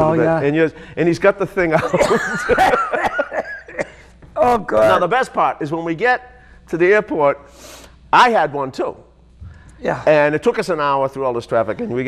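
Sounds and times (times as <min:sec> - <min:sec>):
men laughing: 0:01.7 - 0:04.1.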